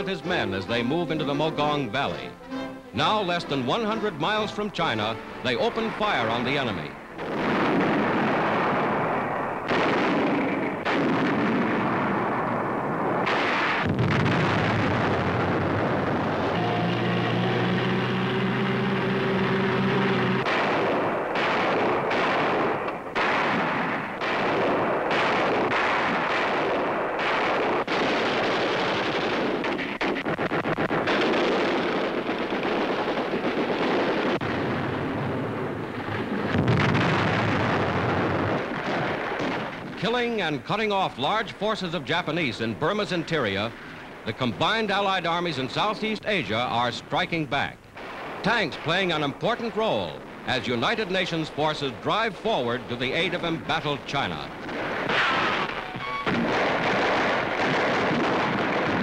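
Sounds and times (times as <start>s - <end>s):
gunshots: 0.0s - 59.0s
heavy blasts: 0.0s - 59.0s
continuous rumble: 14.0s - 23.2s
droning hum: 16.3s - 20.5s.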